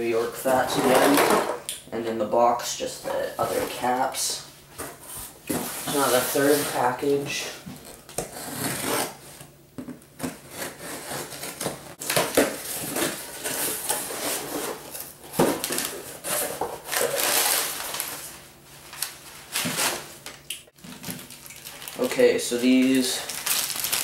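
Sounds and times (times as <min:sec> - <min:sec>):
paper packing rustling: 0:10.2 - 0:24.0.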